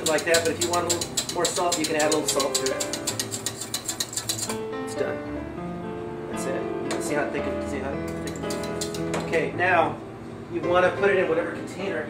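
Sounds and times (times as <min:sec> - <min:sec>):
utensil beating in a metal saucepan: 0:00.0 - 0:04.6, 0:08.1 - 0:09.5.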